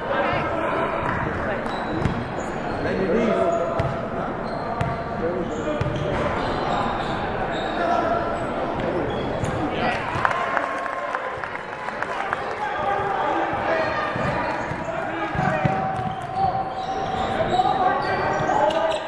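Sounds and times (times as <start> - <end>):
people talking: 0.0 - 19.0.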